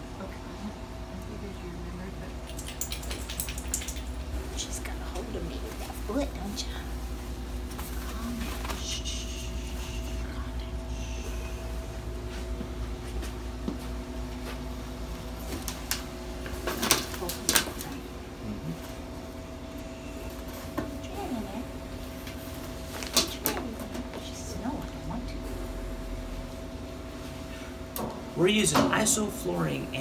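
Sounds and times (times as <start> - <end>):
low equipment hum: 0.0 - 30.0.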